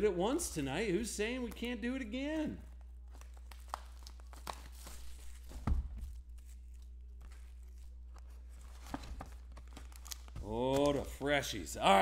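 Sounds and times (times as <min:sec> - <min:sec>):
cellophane tearing and crinkling: 0:02.7 - 0:11.0.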